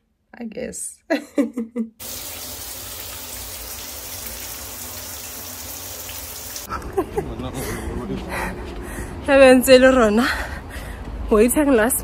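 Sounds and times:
person laughing: 0:01.1 - 0:02.0, 0:06.7 - 0:07.9.

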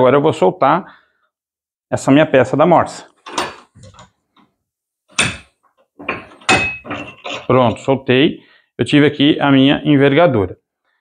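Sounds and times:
metal vise knocks and scrapes: 0:03.2 - 0:04.1, 0:05.1 - 0:07.9.

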